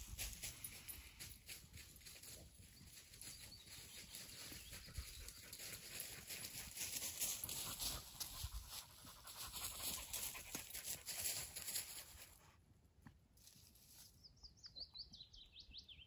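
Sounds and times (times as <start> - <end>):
dog panting: 7.5 - 11.0.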